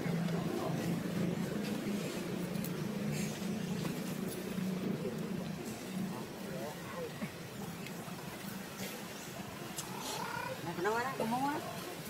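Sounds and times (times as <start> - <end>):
infant monkey high calls: 9.9 - 10.6.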